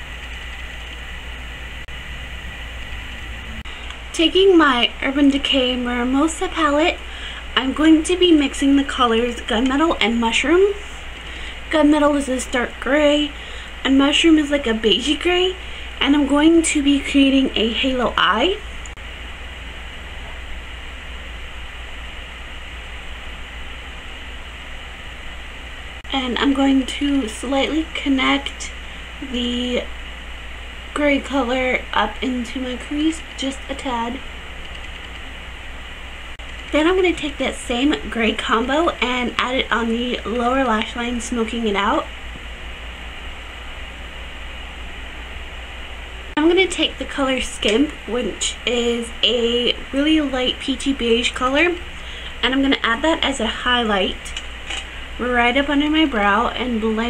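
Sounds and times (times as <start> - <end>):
low hum: 0.0 - 57.0.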